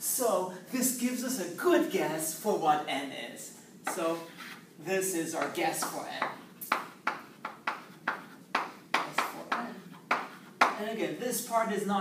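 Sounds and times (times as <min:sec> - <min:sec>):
chalk tapping on blackboard: 0:05.4 - 0:10.8.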